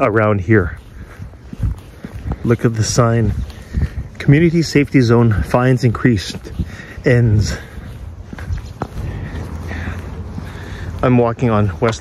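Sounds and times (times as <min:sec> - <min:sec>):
footsteps on concrete: 0:00.0 - 0:12.0.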